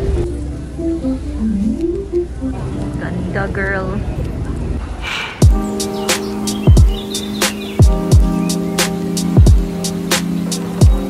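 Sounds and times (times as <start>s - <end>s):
low rumble of terminal ambience: 0.0s - 5.4s.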